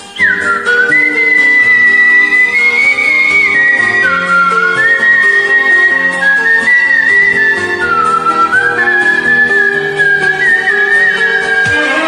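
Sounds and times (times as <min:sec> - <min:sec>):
man whistling a melody: 0:00.0 - 0:11.9
karaoke backing track: 0:00.0 - 0:12.0.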